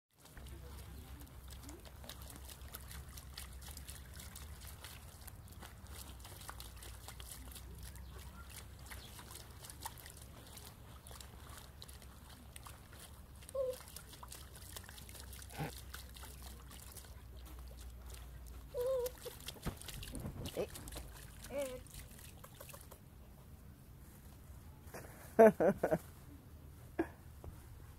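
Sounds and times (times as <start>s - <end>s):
small animal splashing in water: 0.2s - 23.0s
water dripping: 0.2s - 23.0s.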